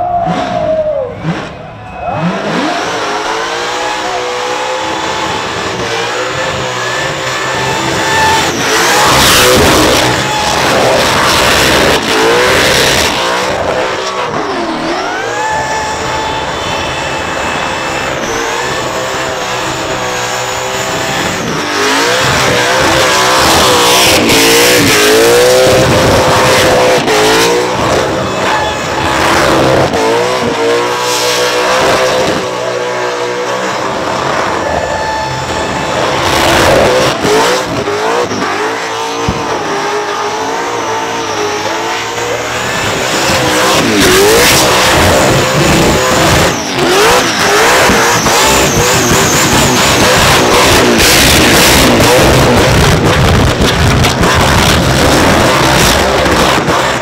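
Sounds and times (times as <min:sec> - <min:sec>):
car engine revving hard: 0:00.0 - 0:57.0.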